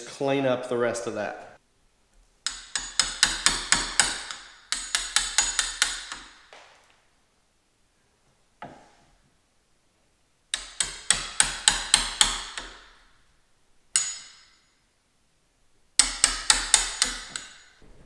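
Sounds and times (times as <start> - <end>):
hammer tapping a chisel: 2.4 - 6.8, 10.5 - 13.0, 13.9 - 14.7, 16.0 - 17.8.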